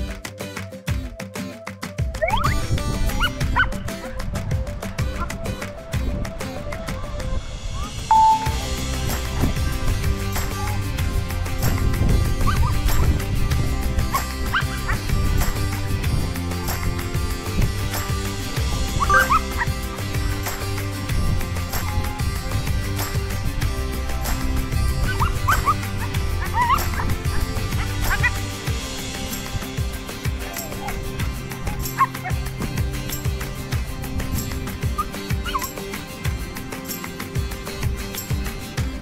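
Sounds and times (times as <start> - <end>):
background music with beat: 0.0 - 39.0
dog yipping: 2.2 - 3.8, 10.4 - 10.8, 12.4 - 13.0, 14.1 - 15.0, 19.0 - 19.7, 21.8 - 22.2, 25.0 - 28.4, 30.4 - 31.0, 31.6 - 32.4, 35.0 - 35.8.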